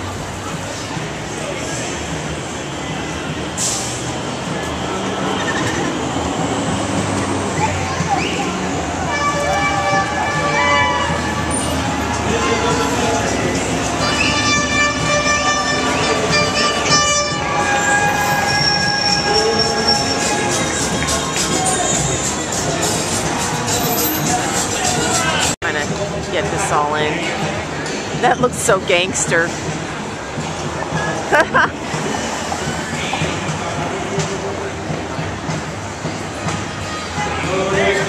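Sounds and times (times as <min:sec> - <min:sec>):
street and crowd noise: 0:00.0 - 0:38.0
high-pitched vehicle horn tones: 0:09.0 - 0:11.7, 0:14.0 - 0:21.0.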